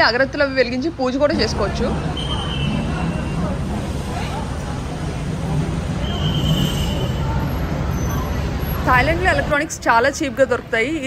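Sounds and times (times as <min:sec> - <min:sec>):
heavy city traffic rumble: 0:00.0 - 0:11.0.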